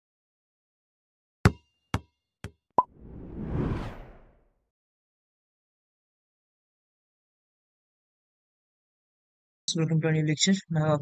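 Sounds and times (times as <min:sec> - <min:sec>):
whoosh: 0:02.8 - 0:04.5.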